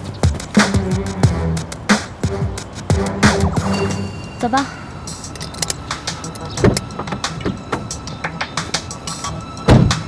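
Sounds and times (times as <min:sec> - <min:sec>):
sharp clicks: 0:05.3 - 0:07.5.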